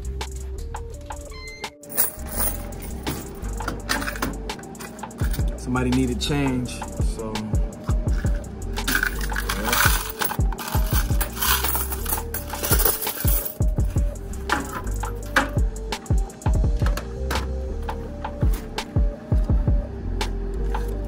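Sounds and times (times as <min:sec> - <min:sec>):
background music with beat: 0:00.0 - 0:21.0
coins clinking in metal box: 0:01.8 - 0:05.5, 0:08.2 - 0:13.8, 0:14.5 - 0:15.3.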